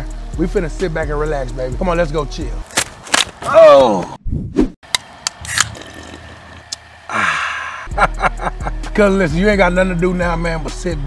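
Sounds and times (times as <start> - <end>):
music bass: 0.0 - 2.6, 7.9 - 11.0
person sighing ahh: 7.1 - 7.9.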